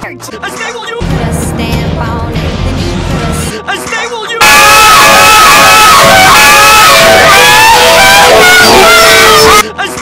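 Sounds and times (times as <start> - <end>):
children shouting and cheering: 4.5 - 9.6.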